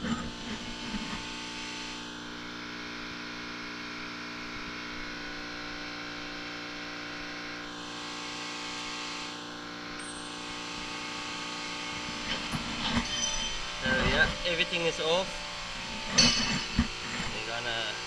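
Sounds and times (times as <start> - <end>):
steady machine hum: 0.0 - 18.0.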